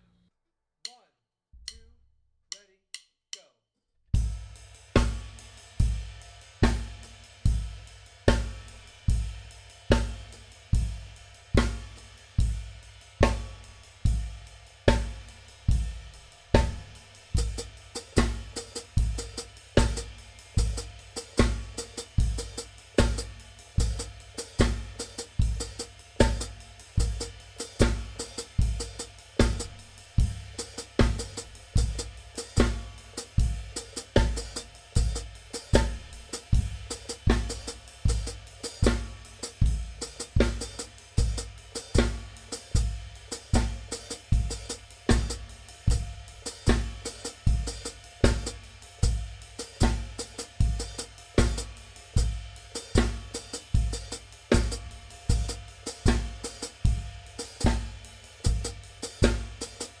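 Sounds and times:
bass drum: 0:04.2 - 1:00.0
hi-hat pedal melody: 0:04.2 - 1:00.0
ride cymbal: 0:04.2 - 1:00.0
snare drum: 0:43.3 - 1:00.0.

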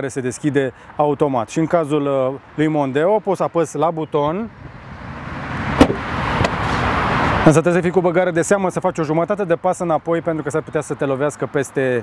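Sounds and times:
rushing noise: 0:04.6 - 0:07.6.

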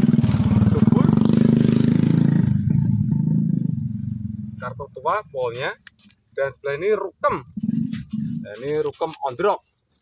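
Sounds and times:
vehicle engine droning: 0:00.0 - 0:05.5.

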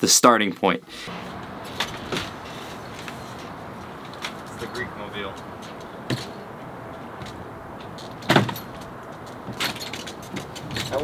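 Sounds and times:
steady background noise: 0:00.3 - 0:11.0
clatter of knocks: 0:07.2 - 0:11.0.

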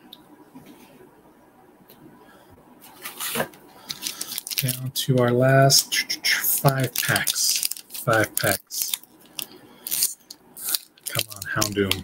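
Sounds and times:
foil wrapper crinkling: 0:03.2 - 0:04.9, 0:06.4 - 0:12.0.

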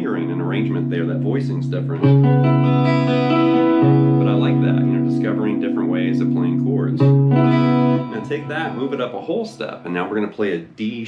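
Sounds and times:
man talking: 0:00.0 - 0:02.2, 0:04.2 - 0:07.1, 0:08.0 - 0:11.0
electric guitar chord ringing: 0:00.0 - 0:09.8.

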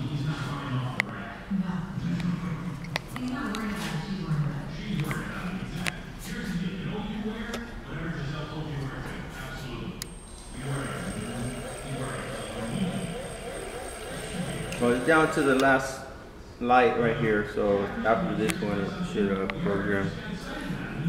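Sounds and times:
indistinct talking in echoing room: 0:00.0 - 0:21.0
faint high-pitched whine: 0:10.0 - 0:16.1.

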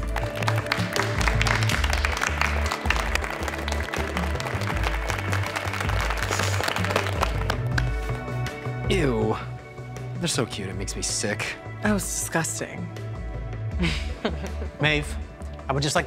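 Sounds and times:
people applauding: 0:00.0 - 0:08.5
background music with bass line: 0:00.0 - 0:16.0.

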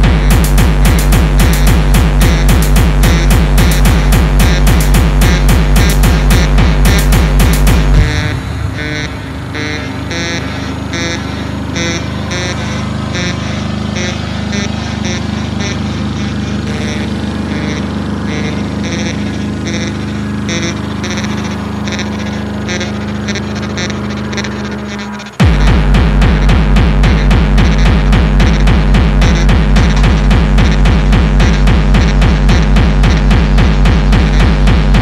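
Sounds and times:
pounding kick drum: 0:00.0 - 0:08.8, 0:25.4 - 0:35.0
high electronic stabs: 0:00.0 - 0:35.0
low synth drone: 0:00.0 - 0:35.0.

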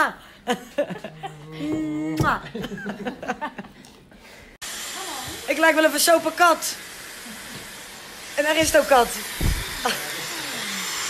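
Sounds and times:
hair dryer blowing: 0:04.6 - 0:11.0
low thump: 0:09.4 - 0:09.8.

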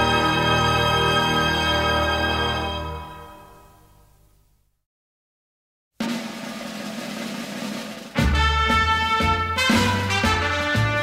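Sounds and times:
march-style film music: 0:00.0 - 0:03.7, 0:06.0 - 0:11.0
snare drum roll: 0:06.0 - 0:11.0.

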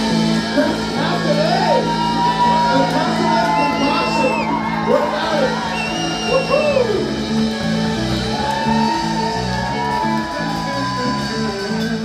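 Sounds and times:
drum kit: 0:00.0 - 0:12.0
electric bass line: 0:00.0 - 0:12.0
electric guitars: 0:00.0 - 0:12.0.

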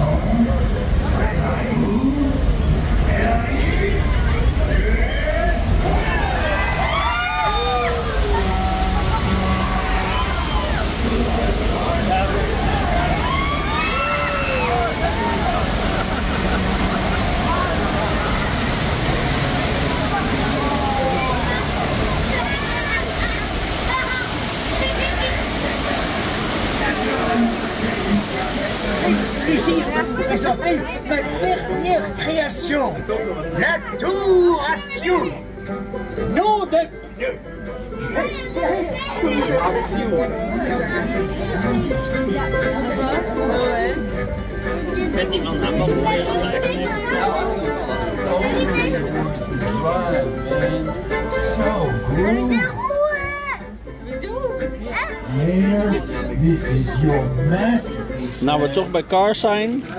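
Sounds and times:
water rushing and splashing: 0:00.0 - 0:59.9
riders exclaiming: 0:12.0 - 0:18.3.

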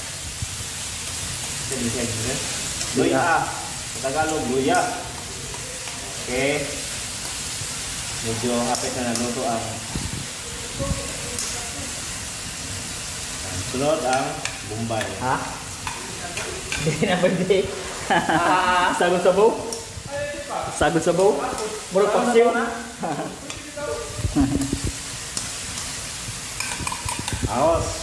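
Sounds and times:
utensil stirring in wok: 0:00.0 - 0:28.0
vegetables sizzling in a wok: 0:00.0 - 0:28.0.

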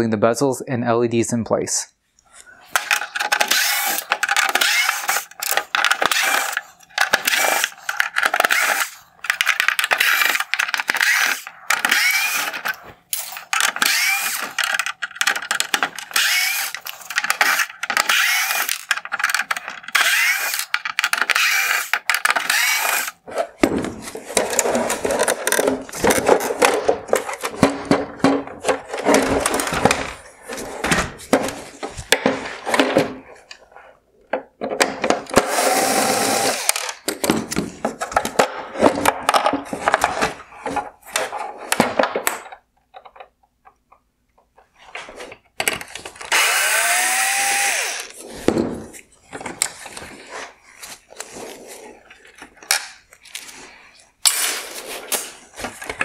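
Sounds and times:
screwdriver backing out screws: 0:02.8 - 0:23.2.

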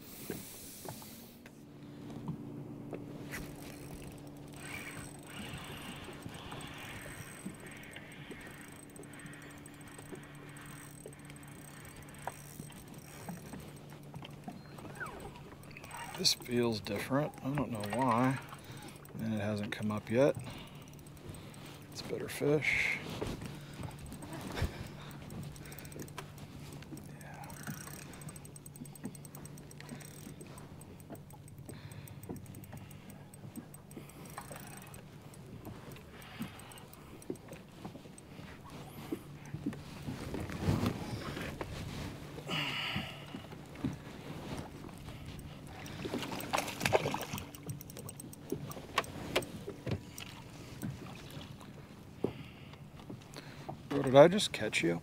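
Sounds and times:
boat low hum: 0:00.0 - 0:55.0
water around hull: 0:00.0 - 0:55.0.

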